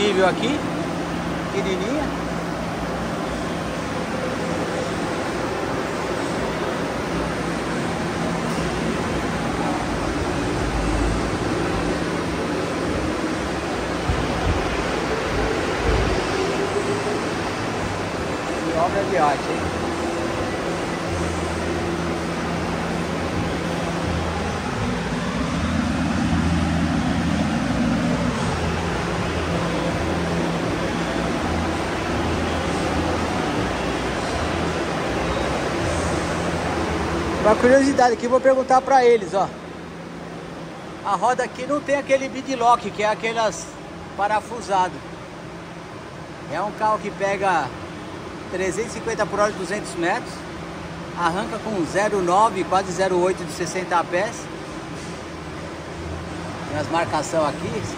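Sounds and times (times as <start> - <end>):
constant low hum: 0.0 - 57.9.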